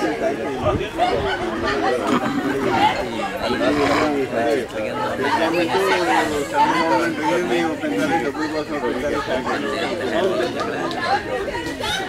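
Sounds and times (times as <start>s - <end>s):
overlapping conversation: 0.0s - 12.0s.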